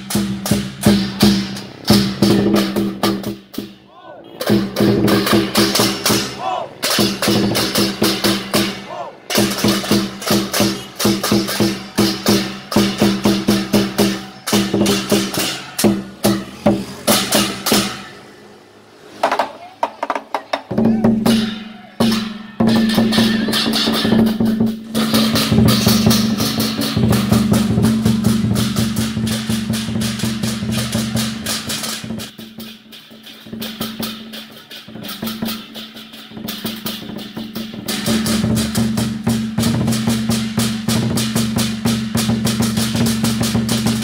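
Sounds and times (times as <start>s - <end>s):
hand cymbals clashing: 0.0s - 3.8s, 4.4s - 18.5s, 21.2s - 44.0s
large drums beating: 0.0s - 18.1s, 19.2s - 44.0s.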